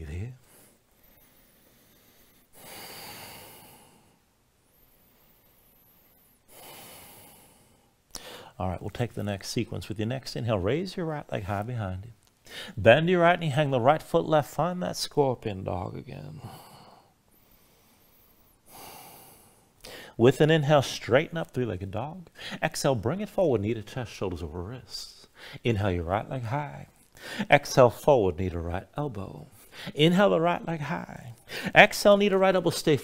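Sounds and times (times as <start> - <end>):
man breathing: 0.4 - 8.6, 12.4 - 12.8, 16.4 - 20.2, 22.4 - 22.6, 25.3 - 25.7, 27.1 - 27.5, 29.5 - 30.0, 31.4 - 31.8.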